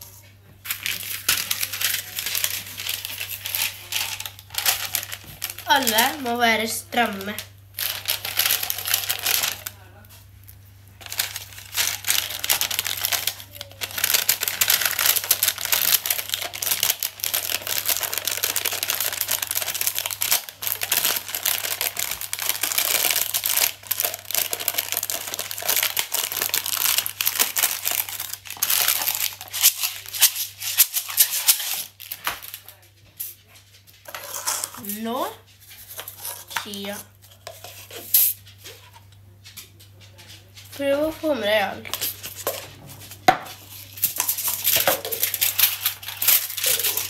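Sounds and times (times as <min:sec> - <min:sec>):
baking paper crinkling: 0:00.0 - 0:47.0.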